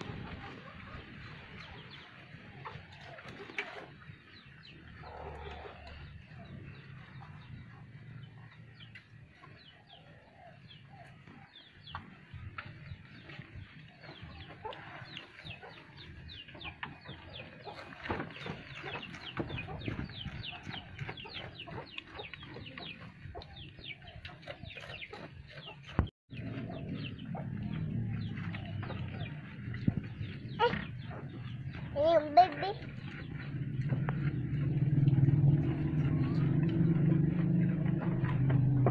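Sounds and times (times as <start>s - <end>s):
chickens clucking: 0.0s - 38.9s.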